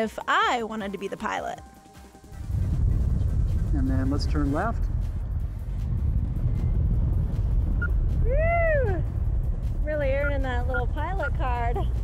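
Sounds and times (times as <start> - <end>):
wind buffeting microphone: 2.3 - 12.0
people talking: 9.9 - 12.0.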